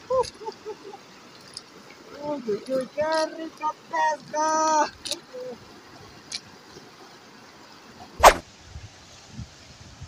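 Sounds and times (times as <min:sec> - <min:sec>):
fast river rushing: 0:00.0 - 0:10.0.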